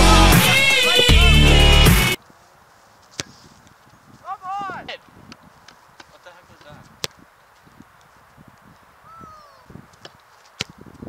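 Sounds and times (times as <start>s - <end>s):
faint open-air hiss: 2.2s - 10.8s
soccer ball kick thud: 10.0s - 10.9s.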